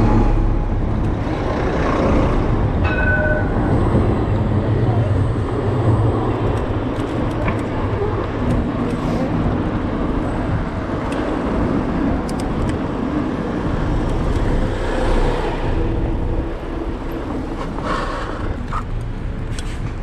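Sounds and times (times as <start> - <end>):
low hum: 0.0 - 17.6
traffic rumble: 0.0 - 20.0.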